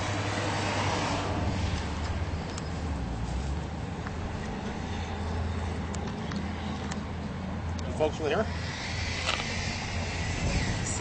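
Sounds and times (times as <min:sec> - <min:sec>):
street noise rumble and hiss: 0:00.0 - 0:11.0.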